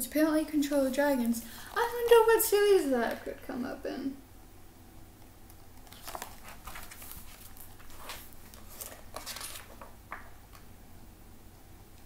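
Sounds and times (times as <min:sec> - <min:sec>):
paper rustling: 0:05.8 - 0:10.6.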